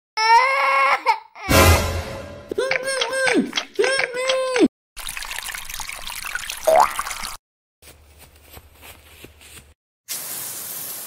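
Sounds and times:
high-pitched crying wail: 0:00.2 - 0:01.6.

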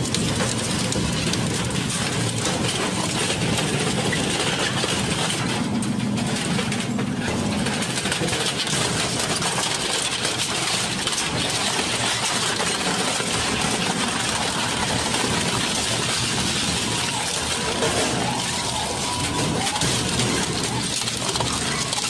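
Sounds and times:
metal crunching and cracking: 0:00.0 - 0:22.0
shredder running: 0:00.0 - 0:22.0.

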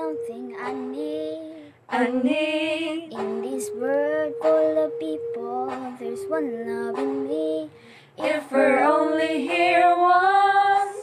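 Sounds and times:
girls singing unaccompanied: 0:00.0 - 0:11.0.

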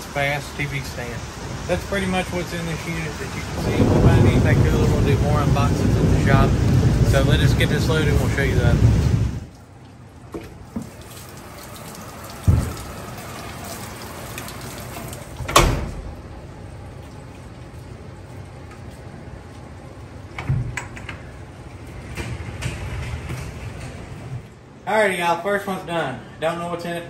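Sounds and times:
steady rain falling: 0:00.0 - 0:24.7
knocks and thumps of loading cargo: 0:12.4 - 0:12.9.

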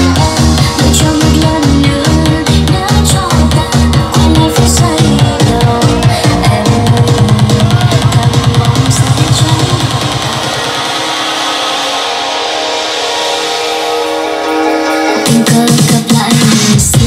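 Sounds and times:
loud dance music: 0:00.0 - 0:17.0.

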